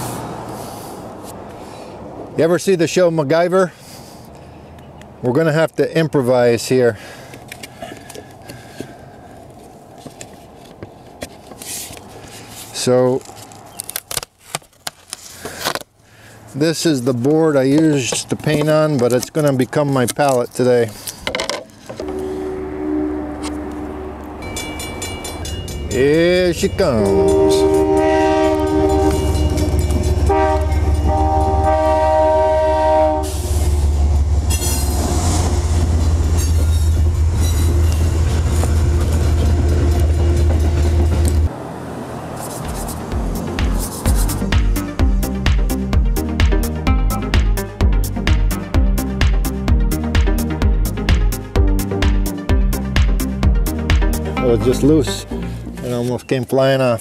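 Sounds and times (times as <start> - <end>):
train passing rumble: 0.0 - 5.2, 21.9 - 46.4
paper rustling: 10.0 - 15.9, 42.4 - 43.0
locomotive horn blasts: 22.0 - 33.9.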